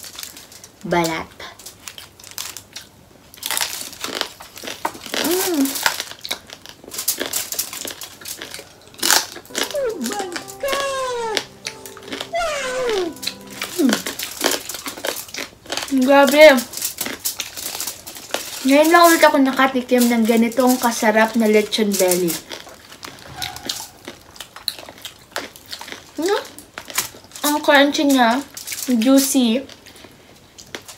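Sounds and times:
crispy pork skin crunching: 1.6s - 9.4s, 23.8s - 30.9s.

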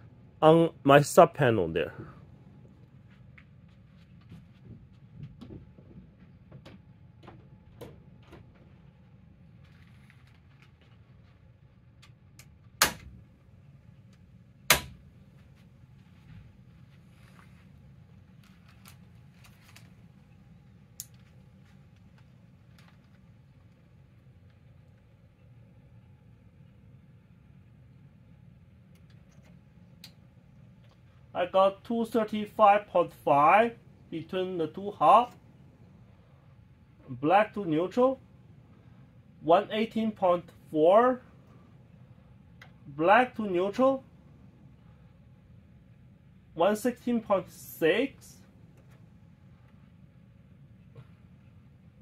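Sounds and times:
faint low hum: 0.0s - 52.0s
circuit breaker snaps: 12.4s - 13.2s, 14.7s - 15.0s.

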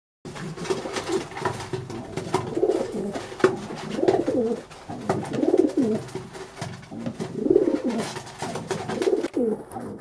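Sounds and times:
pigeons cooing: 0.4s - 10.0s.

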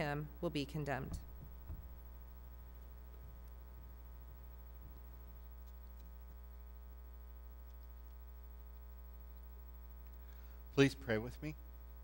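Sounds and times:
low electrical mains hum: 0.0s - 12.0s
faint low thumps: 0.9s - 5.0s.

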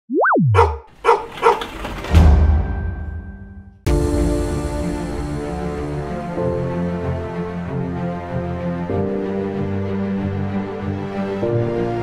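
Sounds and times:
dog barks: 0.5s - 1.8s.

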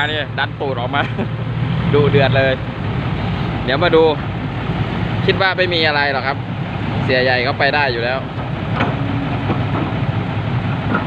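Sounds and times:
heavy diesel engines running: 0.0s - 11.0s.

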